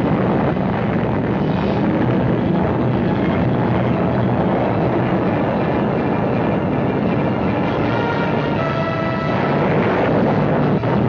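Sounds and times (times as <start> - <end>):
explosion rumbling roar: 0.0 - 11.0.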